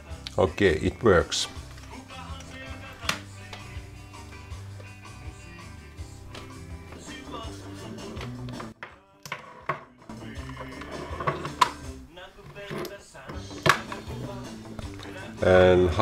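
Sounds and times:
recorded music through speaker: 0.0s - 16.0s.

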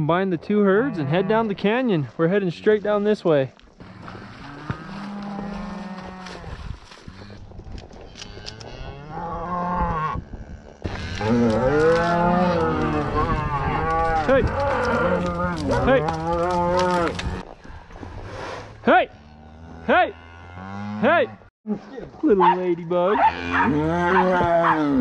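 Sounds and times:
cattle mooing: 0.8s - 1.5s, 3.8s - 7.4s, 8.2s - 17.4s, 19.1s - 21.4s, 23.0s - 25.0s.

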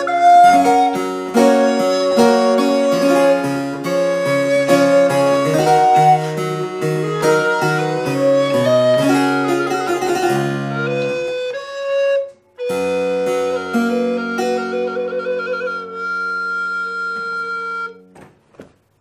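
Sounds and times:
harpsichord: 0.0s - 12.0s.

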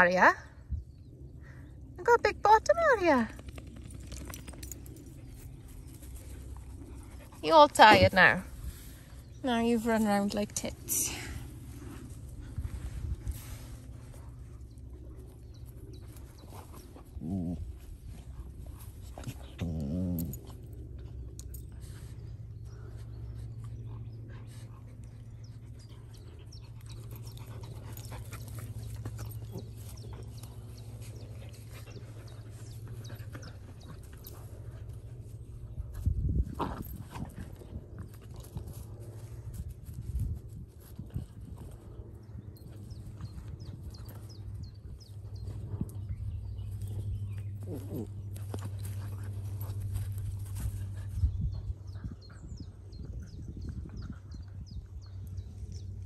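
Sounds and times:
rustling in grass: 5.2s - 19.5s.

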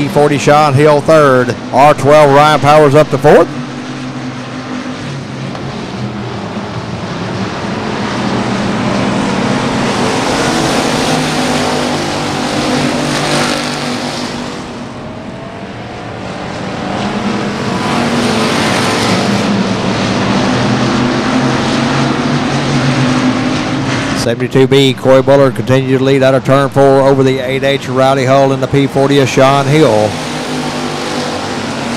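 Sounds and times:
race car engines droning: 0.0s - 31.9s.

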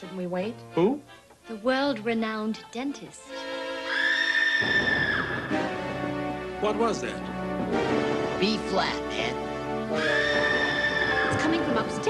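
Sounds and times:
suspenseful background music: 0.0s - 12.0s
high-pitched scream: 3.8s - 5.6s, 10.0s - 11.6s.

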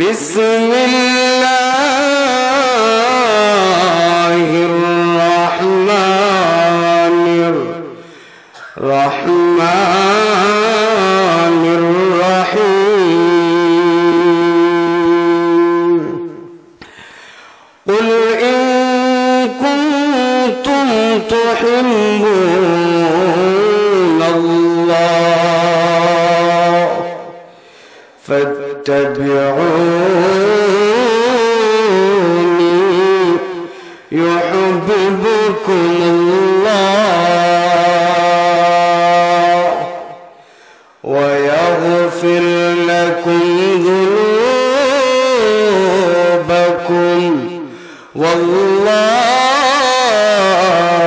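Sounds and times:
man chanting into microphone: 0.0s - 16.7s, 17.8s - 51.0s.

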